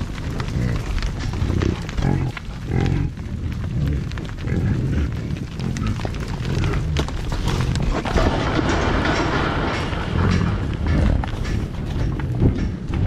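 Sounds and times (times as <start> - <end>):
hooves on dry grass: 0.0 - 8.4
bison grunting: 0.0 - 13.0.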